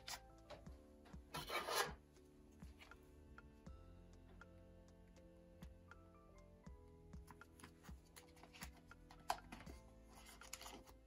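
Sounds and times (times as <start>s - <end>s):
card rubbing against plastic sleeve: 1.4s - 2.0s.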